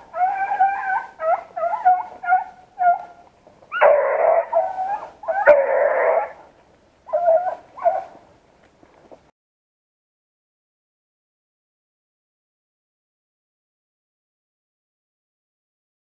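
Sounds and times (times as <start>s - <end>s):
beagles baying: 0.0s - 6.5s, 7.1s - 8.2s.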